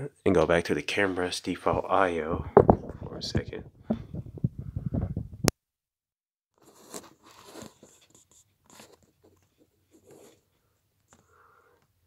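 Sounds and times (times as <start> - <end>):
hands scraping and rustling on phone: 6.6 - 10.5.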